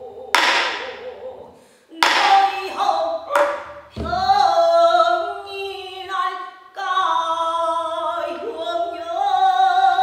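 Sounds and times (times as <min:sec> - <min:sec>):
person singing with vibrato: 0:00.0 - 0:10.0.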